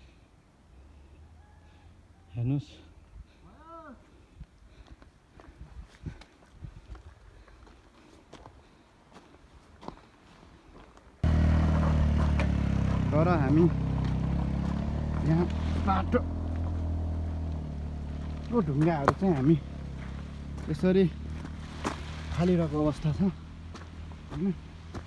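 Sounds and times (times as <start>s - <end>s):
motorcycle engine running: 11.2s - 25.0s.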